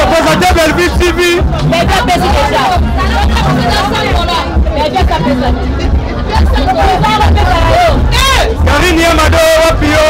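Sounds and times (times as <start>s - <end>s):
crowd babble: 0.0s - 10.0s
music with heavy deep bass: 0.0s - 10.0s.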